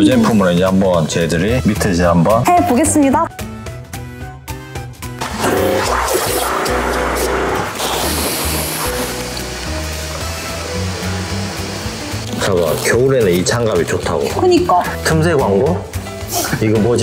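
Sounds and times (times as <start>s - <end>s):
background music with steady beat: 0.0s - 17.0s
water jetting into bucket: 5.2s - 14.7s.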